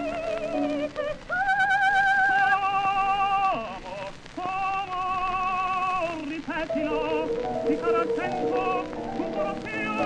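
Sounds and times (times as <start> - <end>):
soprano singing high note: 6.7 - 10.0.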